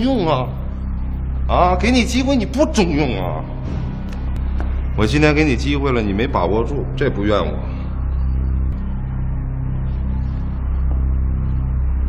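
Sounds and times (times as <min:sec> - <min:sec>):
low held bass notes: 0:00.0 - 0:12.0.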